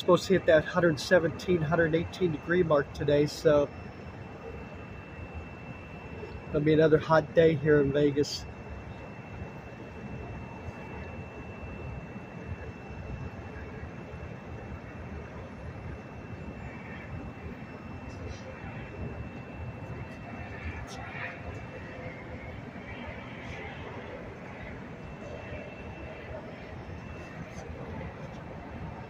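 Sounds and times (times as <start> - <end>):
distant machinery: 0.0 - 29.0
faint high whine: 0.0 - 29.0.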